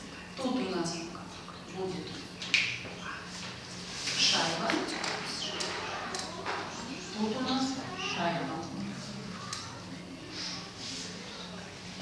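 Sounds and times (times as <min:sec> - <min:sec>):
faint murmured voices: 0:00.0 - 0:12.0.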